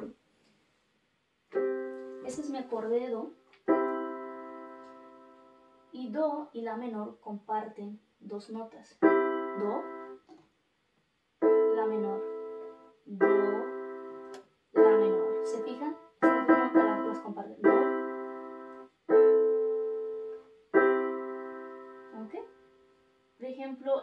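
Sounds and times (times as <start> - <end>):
electronic keyboard piano chords: 1.5 - 6.0, 9.0 - 10.3, 11.4 - 22.8.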